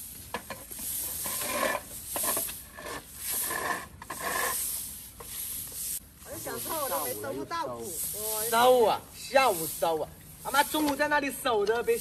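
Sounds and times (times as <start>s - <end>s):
brooms sweeping grain on concrete: 0.0s - 12.0s
pusher scraping concrete: 0.3s - 12.0s.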